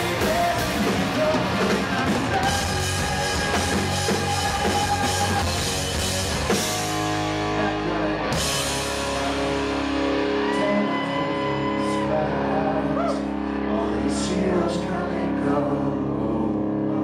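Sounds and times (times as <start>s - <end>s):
drums: 0.0s - 13.7s
guitars holding notes: 0.0s - 17.0s.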